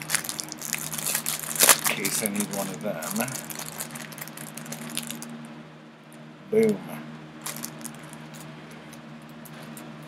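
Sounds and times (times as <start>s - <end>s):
packaging rustling: 0.0s - 5.3s, 7.4s - 8.5s
low hum: 0.0s - 10.0s.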